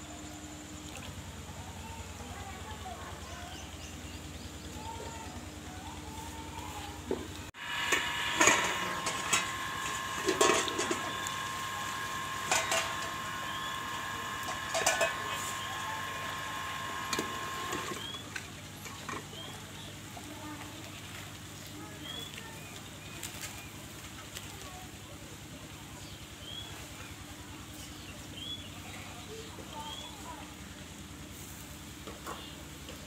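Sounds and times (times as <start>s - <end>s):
high ringing tone: 7.6s - 18.2s
metal pots clanking and scraping: 7.6s - 19.3s
birds chirping: 8.4s - 20.0s, 21.7s - 23.9s.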